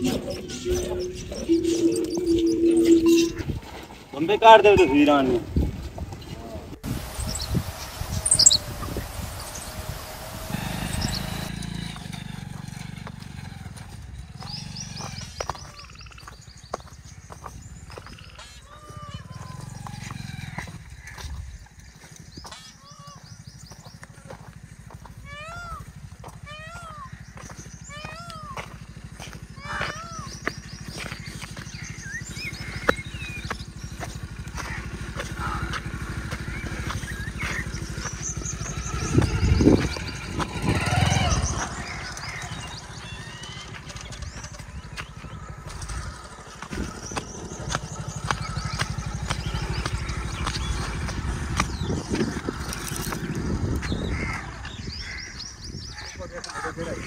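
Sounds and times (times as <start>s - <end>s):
voices: 0.0s - 16.3s, 18.0s - 21.4s, 22.5s - 57.0s
birds calling: 0.0s - 57.0s
motorcycle engine running: 0.0s - 57.0s.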